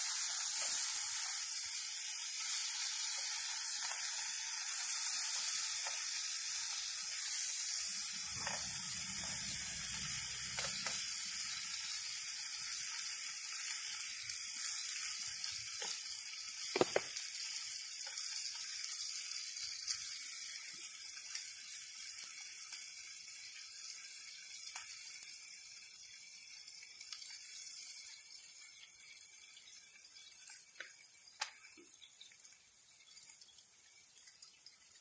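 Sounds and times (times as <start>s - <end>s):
fat crackling and popping: 0.0s - 12.0s, 15.7s - 17.4s
bacon sizzling: 0.0s - 35.0s.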